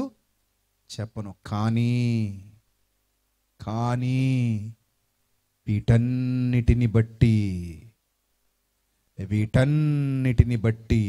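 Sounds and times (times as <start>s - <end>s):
man preaching into a microphone: 0.9s - 2.6s, 3.6s - 4.8s, 5.6s - 7.9s, 9.2s - 11.0s.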